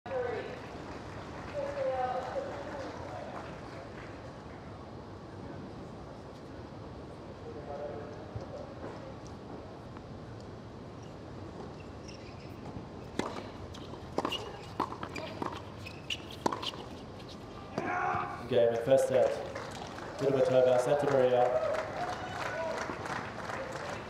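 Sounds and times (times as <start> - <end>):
outdoor court background: 7.9 - 24.0
racket hitting tennis ball: 13.1 - 17.0.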